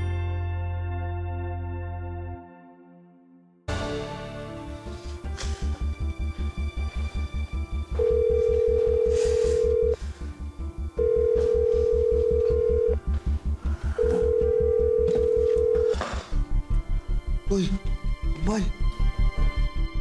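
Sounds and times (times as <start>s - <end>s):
tense music with low pulse: 3.7s - 20.0s
telephone ringback tone: 8.0s - 10.0s, 11.0s - 13.1s, 14.0s - 16.3s.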